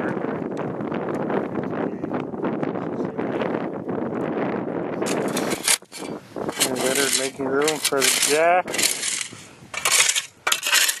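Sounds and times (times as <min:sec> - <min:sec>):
steady rushing noise: 0:05.0 - 0:11.0.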